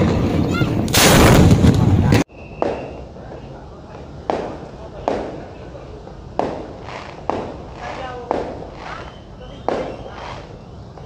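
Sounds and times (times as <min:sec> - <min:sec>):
explosive bangs with echo: 0:00.9 - 0:02.8, 0:06.4 - 0:09.0.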